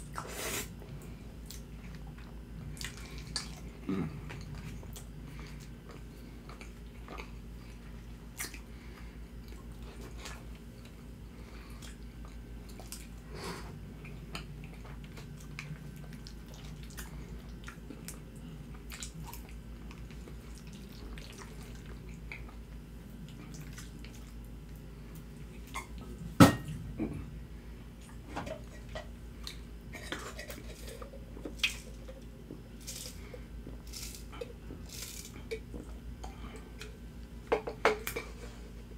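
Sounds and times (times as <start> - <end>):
wet chewing sounds: 0.0 - 26.2.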